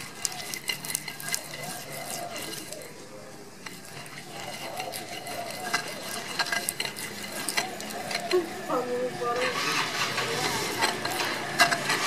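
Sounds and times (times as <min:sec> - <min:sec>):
stone pestle grinding in mortar: 0:00.0 - 0:03.0, 0:03.6 - 0:12.0.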